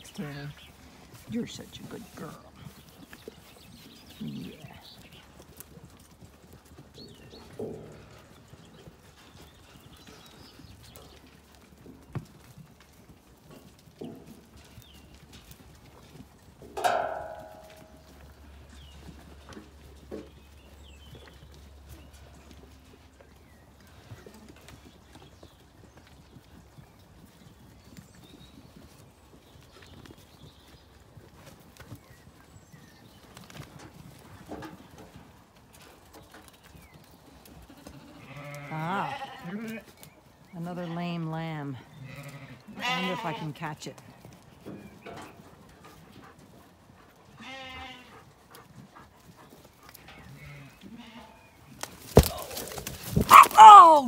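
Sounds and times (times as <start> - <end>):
sheep bleating: 37.7 - 39.8, 42.0 - 43.5.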